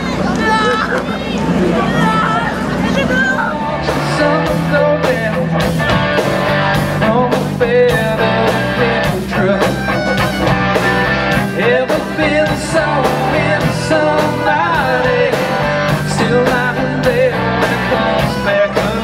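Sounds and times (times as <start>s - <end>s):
crowd voices: 0.0s - 19.0s
rock band playing: 0.0s - 19.0s
drum beat: 3.5s - 19.0s.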